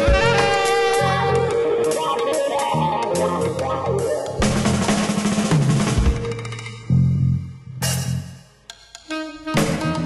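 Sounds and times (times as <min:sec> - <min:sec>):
jazz band playing: 0:00.0 - 0:06.4, 0:09.1 - 0:10.0
bass notes: 0:00.0 - 0:08.4.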